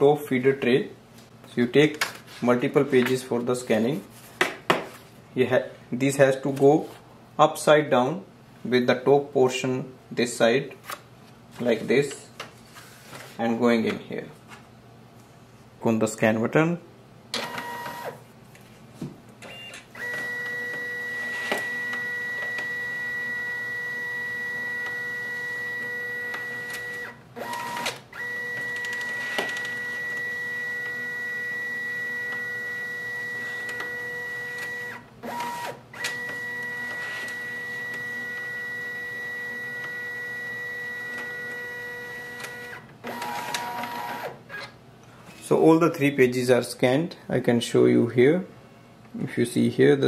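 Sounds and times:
scanner motor whine: 20.0s - 44.3s.

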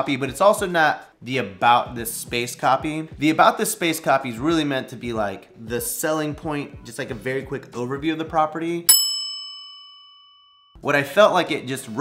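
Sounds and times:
bell-like ding: 8.9s - 10.8s.

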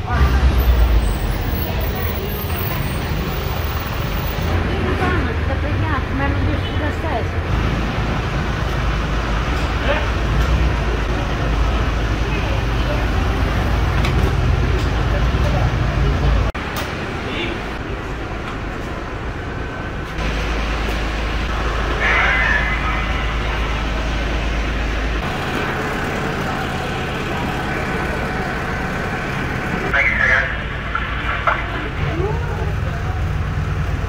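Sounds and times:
people's voices: 0.0s - 7.5s, 21.8s - 24.8s, 25.4s - 33.7s
fire engine idling: 17.8s - 34.0s.

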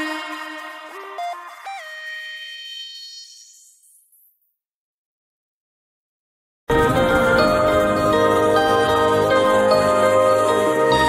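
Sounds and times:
held synth note: 0.0s - 3.9s.

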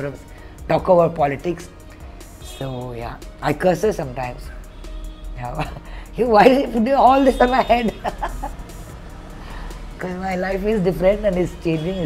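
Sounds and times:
faint background music: 0.0s - 12.0s
woman laughing: 7.5s - 8.6s.

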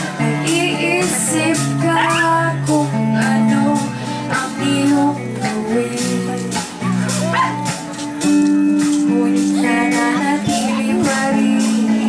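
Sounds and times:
person singing: 0.0s - 7.7s, 8.3s - 12.0s
live band playing: 0.0s - 12.0s.

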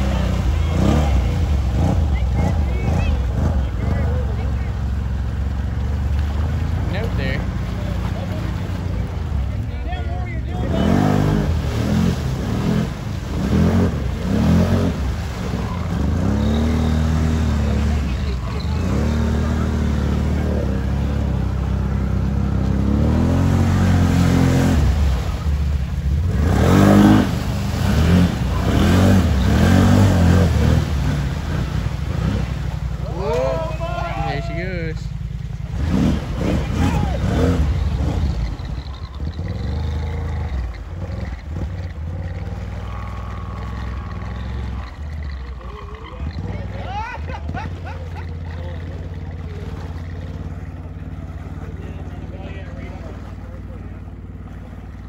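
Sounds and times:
atv engine revving: 0.0s - 55.0s
water churning: 0.0s - 55.0s.

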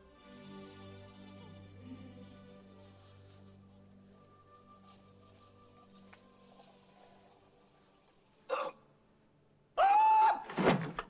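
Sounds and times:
faint film soundtrack: 0.0s - 11.0s.

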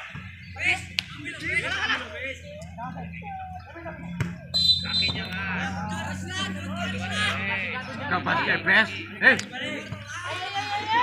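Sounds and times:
players shouting: 0.0s - 2.8s, 3.9s - 11.0s
high whistle blast: 4.5s - 5.1s.

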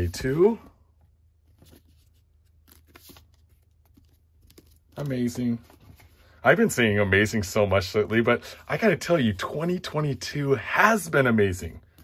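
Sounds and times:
paper and cardboard rustling: 1.4s - 6.3s.

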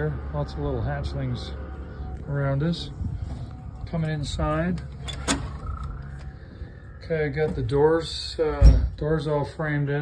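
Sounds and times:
low rumble: 0.0s - 9.3s
door hinge squeak: 5.0s - 6.4s.

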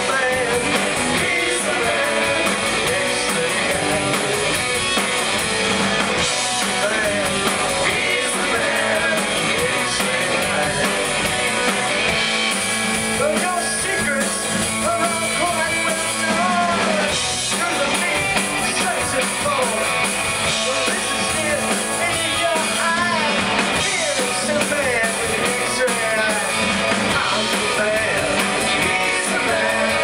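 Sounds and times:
person singing lead vocal: 0.0s - 4.7s, 6.4s - 11.8s, 13.2s - 30.0s
drum kit: 0.0s - 30.0s
electric guitars: 0.0s - 30.0s.

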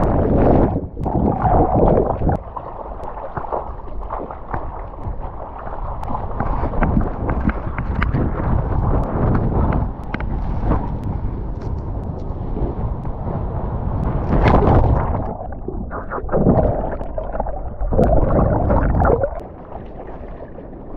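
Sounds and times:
wind buffeting microphone: 0.0s - 2.8s, 3.4s - 20.9s
water splashing around surfboard: 0.0s - 12.2s, 14.1s - 20.9s.

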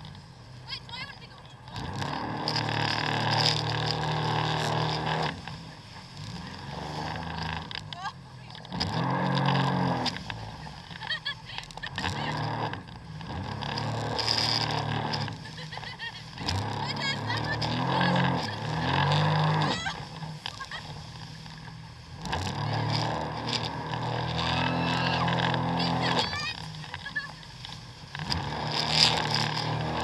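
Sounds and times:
jet ski engine running: 0.0s - 30.0s
rush of wind and water spray: 13.1s - 30.0s.

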